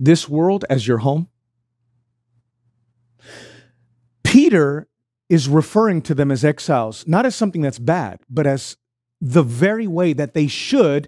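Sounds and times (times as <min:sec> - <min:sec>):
man breathing into microphone: 0:03.2 - 0:03.8.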